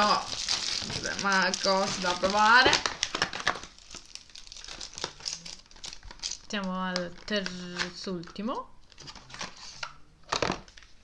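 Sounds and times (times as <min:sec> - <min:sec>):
packaging crinkling: 0:00.0 - 0:08.0.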